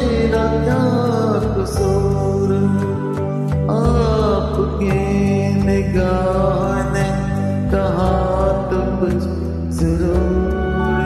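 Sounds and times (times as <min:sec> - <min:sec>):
karaoke backing track: 0:00.0 - 0:11.0
man singing: 0:00.0 - 0:11.0.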